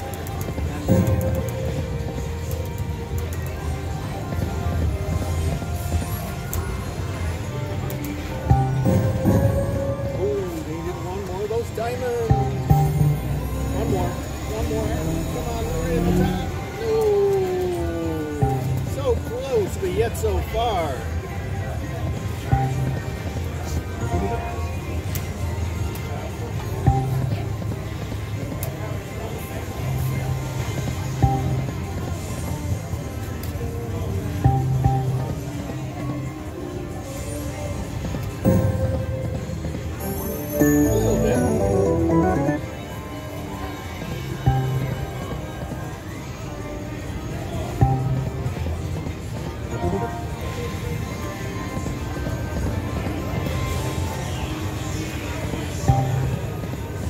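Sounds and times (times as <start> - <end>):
slot machine game music: 8.6 - 16.8, 38.5 - 43.9.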